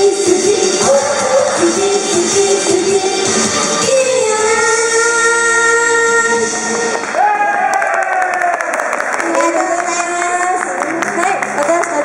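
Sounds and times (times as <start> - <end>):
women singing pop song: 0.0 - 6.6
recorded backing track: 0.0 - 7.1.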